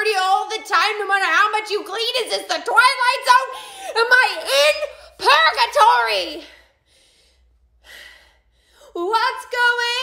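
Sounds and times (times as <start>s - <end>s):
faint breath: 6.4s - 9.0s.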